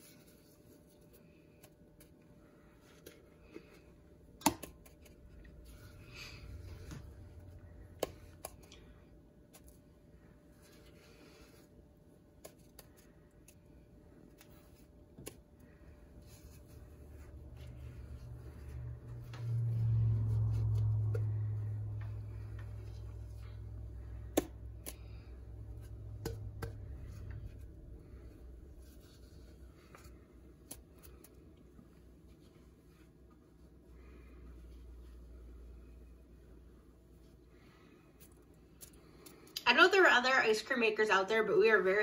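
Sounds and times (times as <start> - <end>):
low electrical hum: 0.0 - 42.0.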